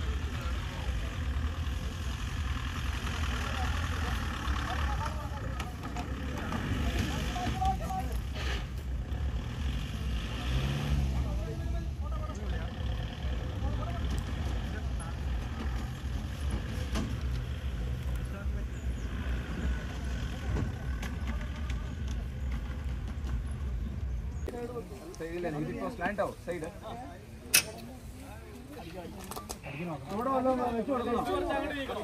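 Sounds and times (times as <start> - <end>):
jeep engine running at low revs: 0.0 - 24.4
voices of onlookers: 0.0 - 32.0.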